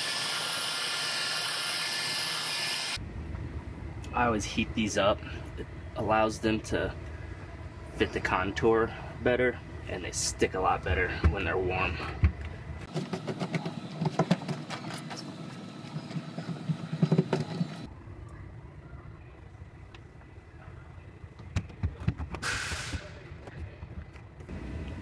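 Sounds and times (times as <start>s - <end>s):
brief hiss: 22.4s - 23.2s.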